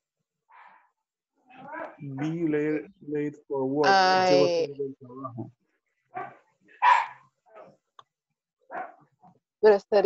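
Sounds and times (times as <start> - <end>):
dog barking: 6.1 - 7.7, 8.7 - 9.0.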